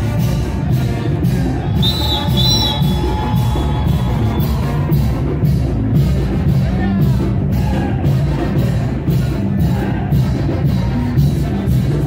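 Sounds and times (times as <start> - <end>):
loud music with steady beat: 0.0 - 12.0
high whistling tone: 1.6 - 4.7.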